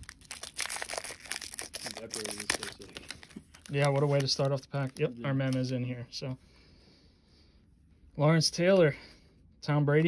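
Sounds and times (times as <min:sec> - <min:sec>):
foil wrapper tearing and crinkling: 0:00.0 - 0:05.0.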